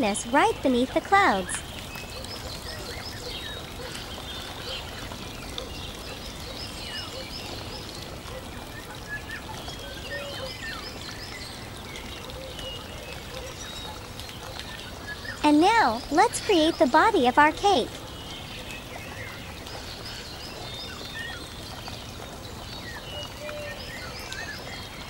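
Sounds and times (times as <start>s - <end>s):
birds chirping: 0.0s - 25.0s.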